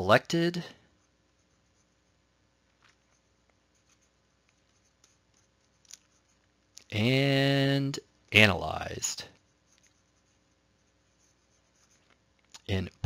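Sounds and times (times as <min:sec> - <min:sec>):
stylus scratching tablet screen: 0:00.0 - 0:13.0.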